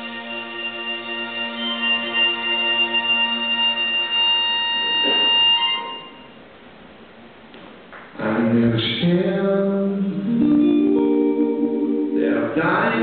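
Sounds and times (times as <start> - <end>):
band holding sustained chord: 0.0 - 6.4.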